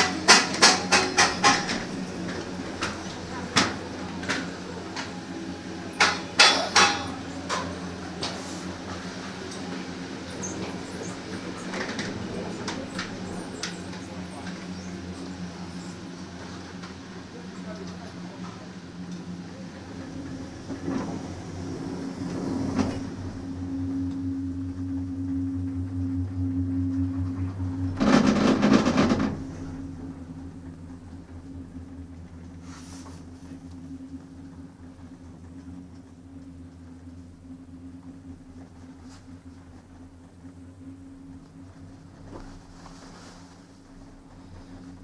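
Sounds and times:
clattering rumble over tower wheels: 0.0s - 42.5s
chairlift running noise: 0.0s - 45.0s.

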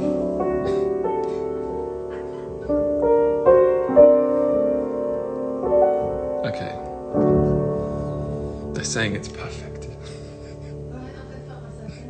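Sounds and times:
piano playing slow chords: 0.0s - 12.0s.

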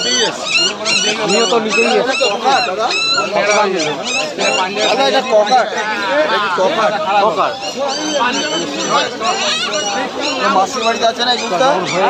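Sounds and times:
puppy whimpering and yelping: 0.0s - 5.7s, 7.6s - 12.0s
people talking: 0.0s - 12.0s.

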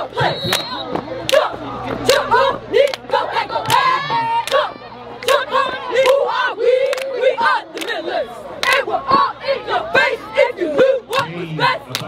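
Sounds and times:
cheerleaders shouting a chant: 0.0s - 12.0s.

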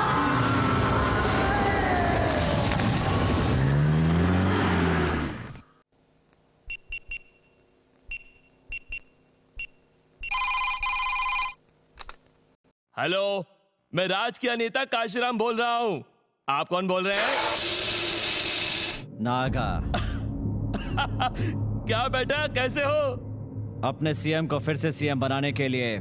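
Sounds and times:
electronic telephone ring: 10.2s - 11.6s.

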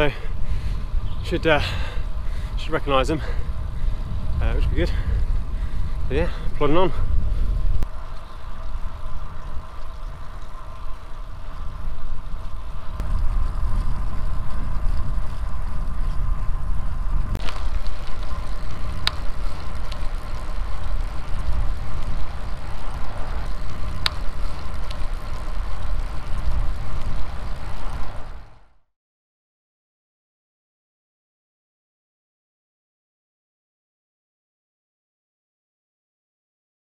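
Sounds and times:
wind and road noise rumble: 0.0s - 28.8s
sharp clicks: 17.3s - 20.4s, 23.6s - 26.2s.

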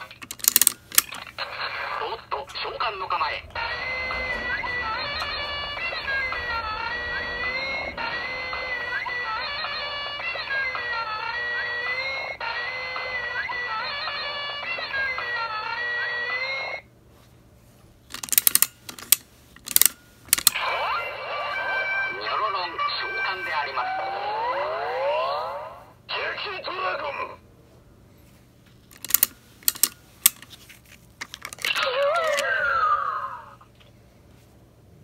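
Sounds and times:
toy electronic rising tones: 1.5s - 16.0s, 19.8s - 25.0s.

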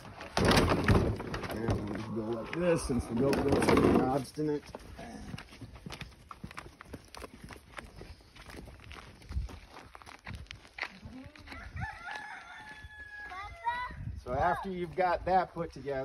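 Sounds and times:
footsteps on dry dirt: 1.5s - 16.0s
rooster crowing: 11.5s - 13.7s.

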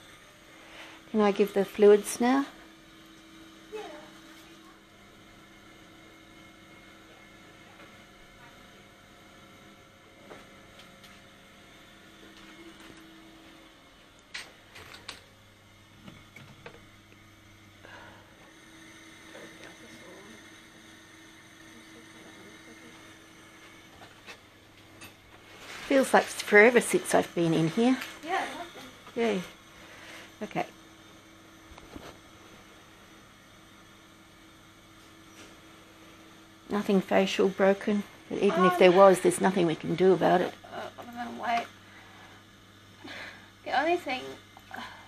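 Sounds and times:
faint electrical hum: 0.0s - 45.0s.

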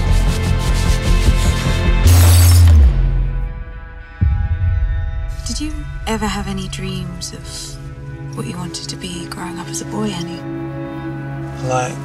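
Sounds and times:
music: 0.0s - 12.0s
mirror glass shattering: 2.0s - 3.1s
deep boom: 2.8s - 7.4s.

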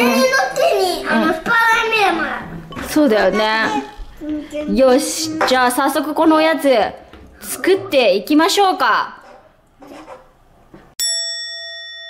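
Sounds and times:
bell-like ding: 11.0s - 12.0s.

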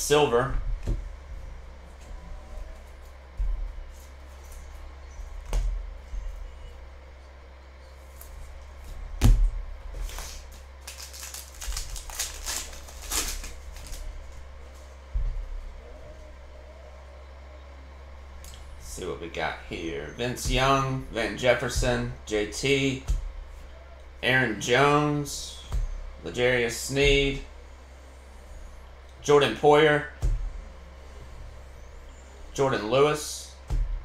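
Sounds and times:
steady low hum: 0.0s - 34.0s
foil wrapper tearing and crinkling: 10.8s - 14.1s.

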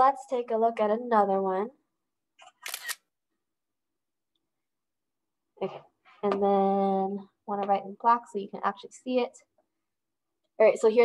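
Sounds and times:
camera shutter click: 2.4s - 3.0s.

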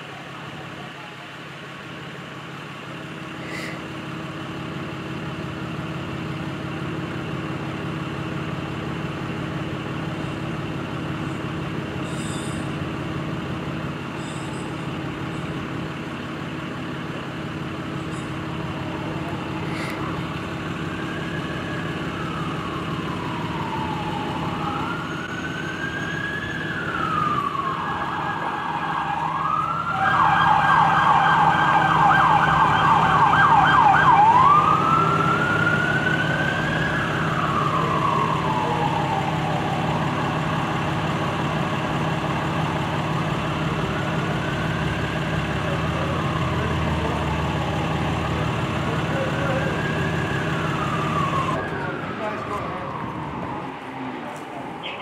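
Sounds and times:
emergency siren wailing and yelping: 18.1s - 55.0s.

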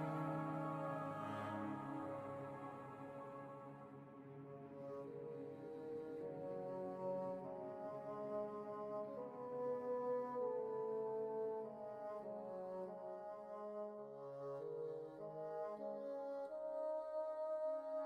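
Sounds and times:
slow brass-like chords: 0.0s - 7.6s.

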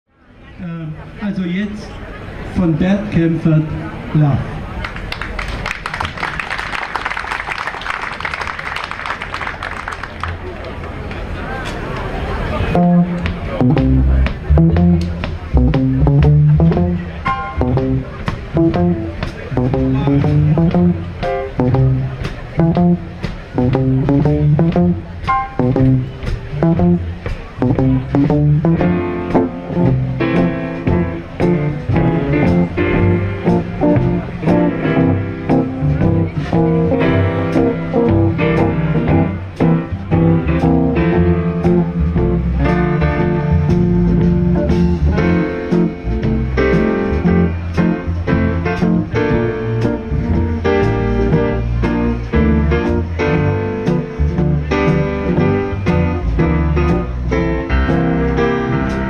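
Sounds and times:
bass: 0.0s - 59.0s
drums: 11.6s - 59.0s
piano: 12.4s - 59.0s
electric guitar: 12.7s - 59.0s.

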